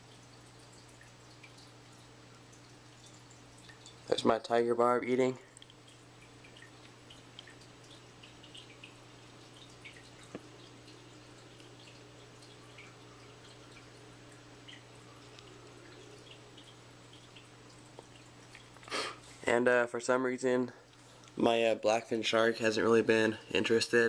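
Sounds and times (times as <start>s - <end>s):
water dripping and trickling: 0.0s - 19.6s, 20.7s - 21.6s
steady low hum: 0.0s - 24.0s.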